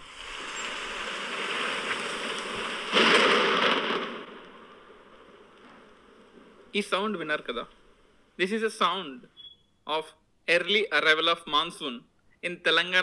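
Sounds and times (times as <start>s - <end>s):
heavy rain hiss: 0.0s - 9.2s.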